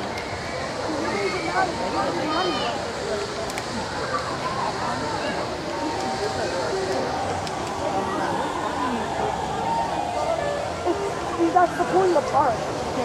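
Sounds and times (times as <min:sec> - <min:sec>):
crowd chatter: 0:00.0 - 0:13.0.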